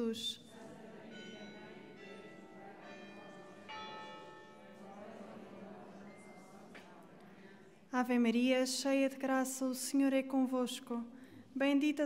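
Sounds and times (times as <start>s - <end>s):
church bells ringing: 0.7s - 6.7s.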